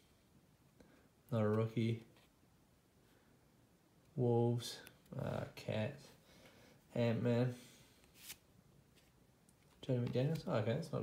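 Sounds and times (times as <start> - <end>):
trading card sliding swish: 8.0 - 8.5.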